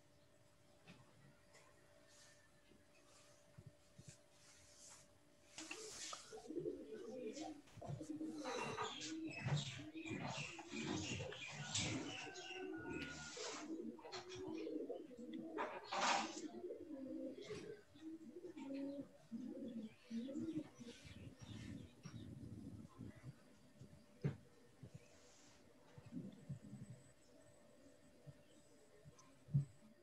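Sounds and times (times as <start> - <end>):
pigeons cooing: 5.6 - 30.0.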